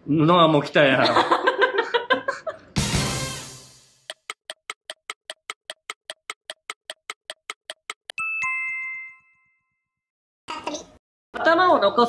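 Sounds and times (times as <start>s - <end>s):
clock-like ticking: 4.1s - 8.2s.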